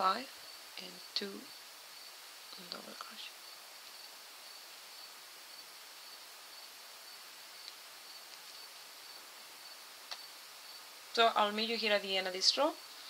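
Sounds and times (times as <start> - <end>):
faint high-pitched whine: 0.0 - 13.0
steady hiss: 0.0 - 13.0.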